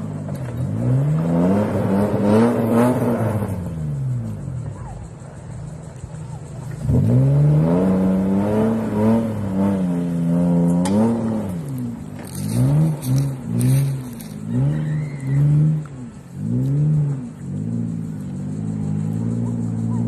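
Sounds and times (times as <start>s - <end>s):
car engine revving hard: 0.0s - 4.4s, 6.7s - 20.0s.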